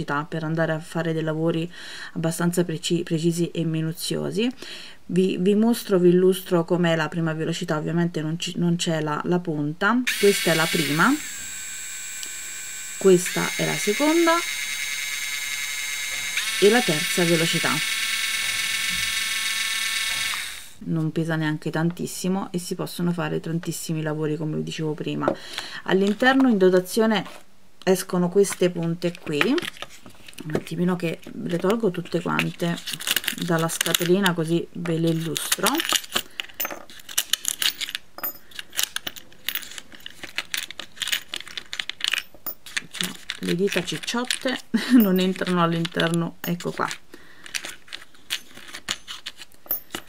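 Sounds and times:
rotary tool high whine: 10.1s - 20.8s
metal bits clicking in plastic case: 28.4s - 50.0s.

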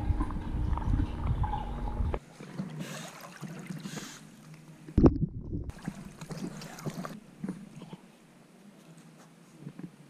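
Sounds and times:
muffled underwater rumble: 0.0s - 2.2s, 5.0s - 5.8s
water splashing around swimming dog: 5.7s - 7.2s.

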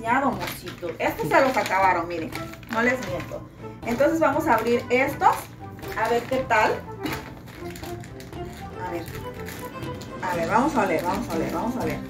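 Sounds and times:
background music: 0.0s - 12.0s
plastic bag rustling: 0.0s - 12.0s.

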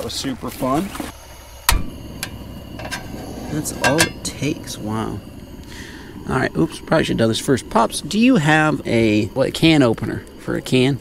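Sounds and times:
gas stove burner rush: 0.6s - 11.0s.

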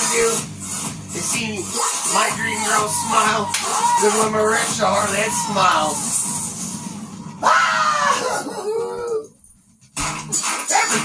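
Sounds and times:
man yelling: 2.3s - 6.0s.

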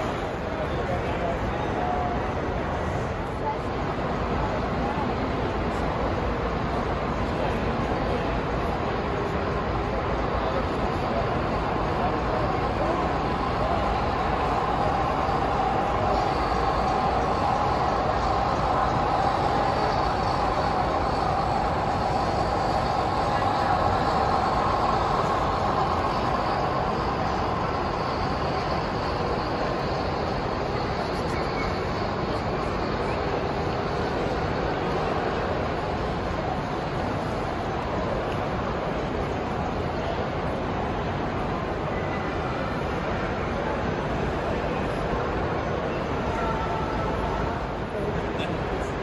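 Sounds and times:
crowd chatter: 0.0s - 49.0s
model train rumbling on track: 0.0s - 49.0s.

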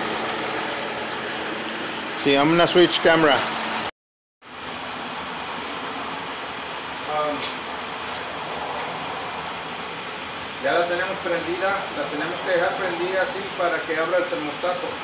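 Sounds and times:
car engine idling: 0.0s - 3.9s, 4.5s - 15.0s.

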